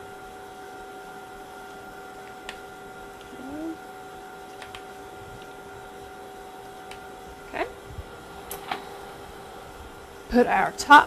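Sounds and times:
lab instruments humming: 0.0 - 11.0.

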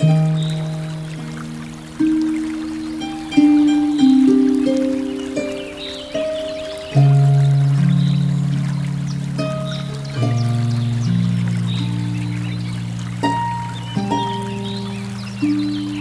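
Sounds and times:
harp playing a slow hymn: 0.0 - 16.0
river flowing faintly: 0.0 - 16.0.

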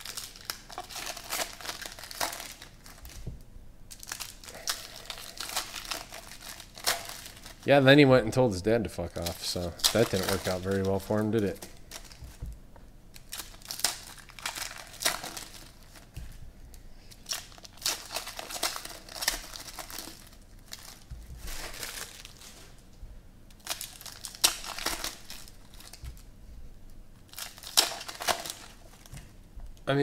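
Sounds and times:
foil wrappers crinkling and tearing: 0.0 - 3.3, 3.9 - 8.1, 9.0 - 12.4, 13.1 - 16.4, 17.0 - 22.8, 23.5 - 26.3, 27.2 - 29.2.

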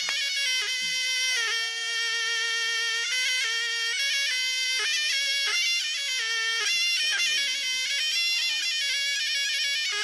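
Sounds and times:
double-reed shawm holding a long note: 0.0 - 10.0.

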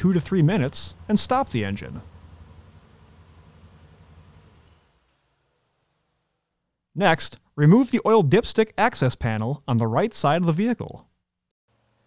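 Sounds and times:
engine idling with low hum: 0.0 - 6.4.

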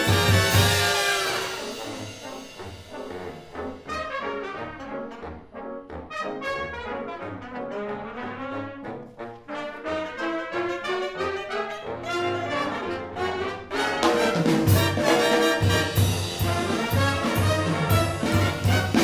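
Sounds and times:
jazz big band playing: 0.0 - 19.0.

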